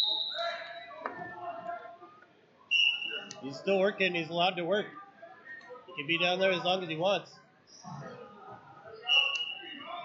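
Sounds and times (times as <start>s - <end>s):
referee whistle blast: 0.0s - 0.8s
voices in a gym: 0.0s - 10.0s.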